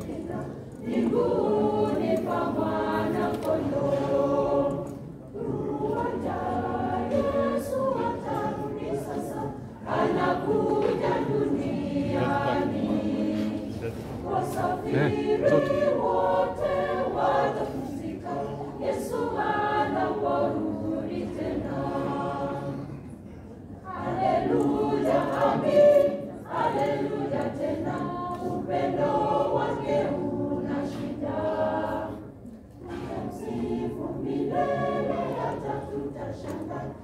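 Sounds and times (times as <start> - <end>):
choir singing a cappella: 0.0 - 37.0.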